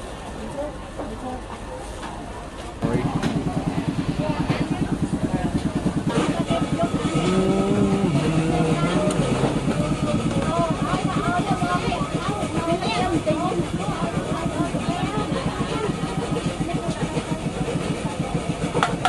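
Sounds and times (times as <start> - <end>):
voices talking: 0.4 - 19.0
small engine puttering: 2.8 - 19.0.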